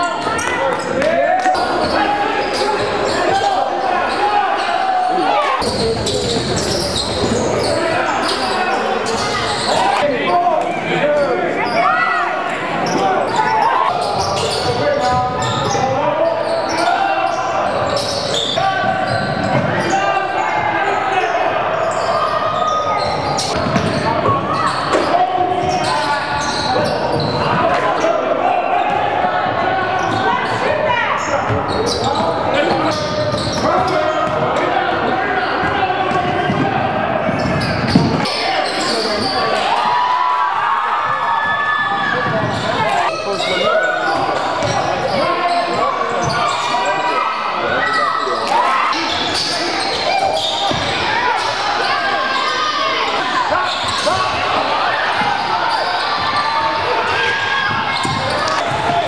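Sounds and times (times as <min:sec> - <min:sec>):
crowd voices: 0:00.0 - 0:59.0
basketball bouncing on court: 0:23.4 - 0:25.8, 0:31.5 - 0:34.6, 0:57.6 - 0:59.0.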